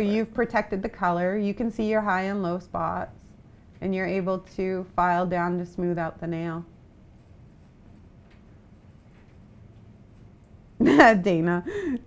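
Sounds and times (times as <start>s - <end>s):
low room noise: 0.0s - 12.0s
woman laughing out loud: 10.8s - 12.0s.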